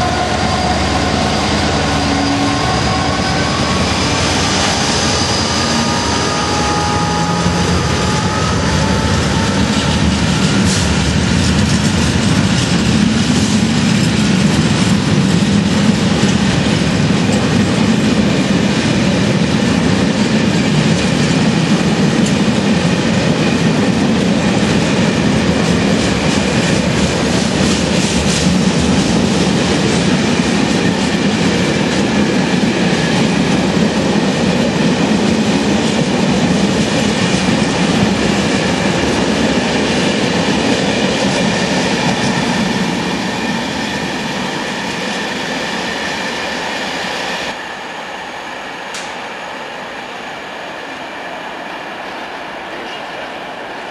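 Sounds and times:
train wheels rumbling on rails: 0.0 - 53.9.

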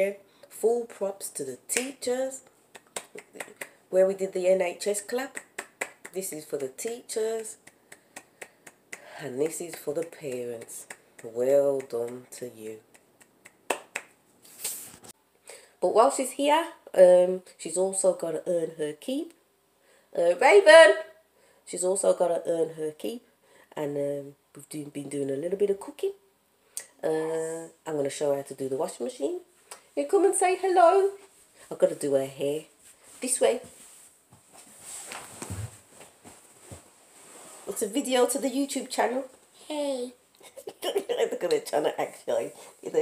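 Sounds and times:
hand claps: 1.7 - 2.0, 2.7 - 3.8, 5.3 - 6.7, 7.4 - 12.3, 12.9 - 14.2
short rustle: 14.4 - 15.2, 32.8 - 37.9.

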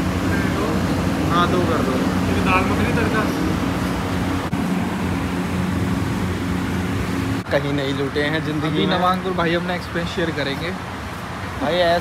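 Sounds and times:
low mechanical drone: 0.0 - 7.6.

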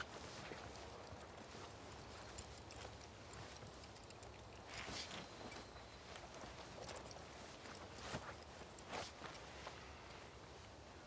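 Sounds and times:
faint clicks: 0.0 - 10.3.

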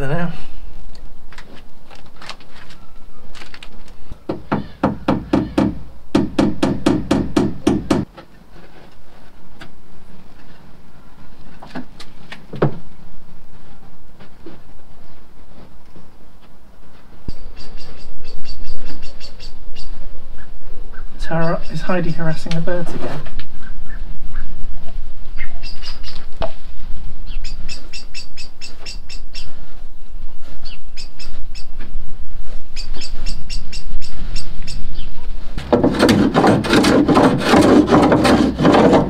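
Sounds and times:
hammer tapping on plywood: 4.3 - 8.1.

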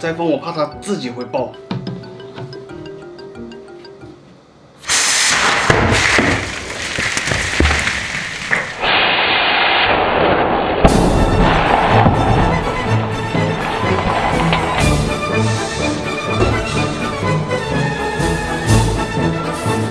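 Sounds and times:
music with steady beat: 1.5 - 4.2
rushing spray: 4.8 - 10.9
bottle bursting with loud pop: 4.9 - 7.7.

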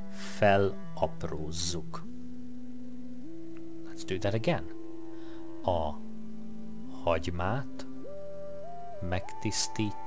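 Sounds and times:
soft sustained background music: 0.0 - 10.0.

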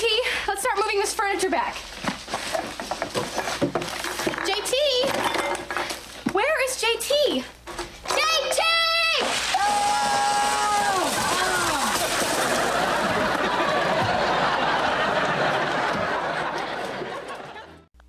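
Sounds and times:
studio audience laughing: 12.2 - 17.9.

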